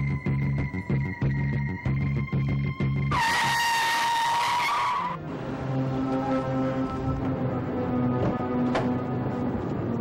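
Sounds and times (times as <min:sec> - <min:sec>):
car tyres screeching: 0:03.1 - 0:05.2.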